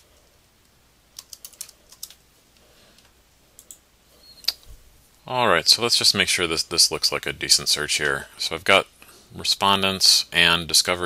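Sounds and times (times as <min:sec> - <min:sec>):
computer keyboard typing: 0:01.1 - 0:02.2, 0:03.6 - 0:03.8.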